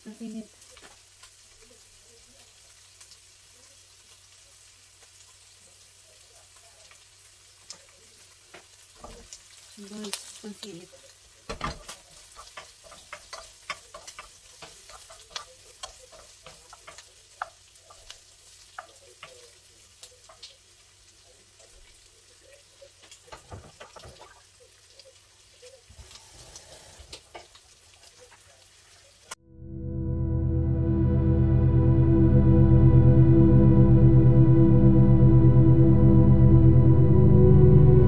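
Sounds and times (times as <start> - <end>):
food frying in a pan: 0.0 - 29.4
wooden spatula scraping a pan: 11.6 - 19.3.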